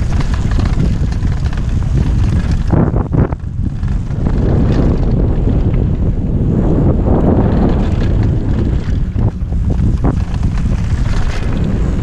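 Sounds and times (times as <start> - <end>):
bike rattling on rough ground: 0.0 - 12.0
wind buffeting microphone: 0.0 - 12.0.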